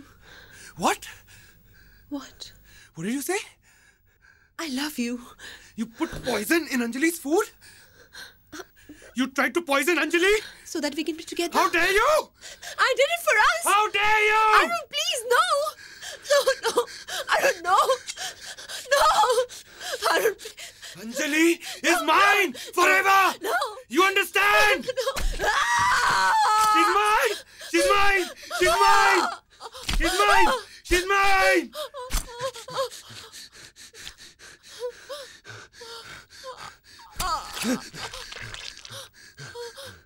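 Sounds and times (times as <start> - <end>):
woman crying out: 18.9 - 20.4, 24.6 - 30.7
person moaning: 30.0 - 30.7, 36.5 - 38.8
person gasping for breath: 32.9 - 40.0
person groaning: 37.2 - 38.6.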